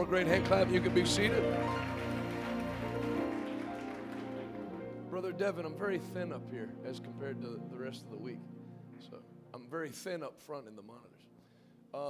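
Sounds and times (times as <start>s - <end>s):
congregation applause: 0.0s - 5.8s
soft music with held chords: 0.0s - 10.2s.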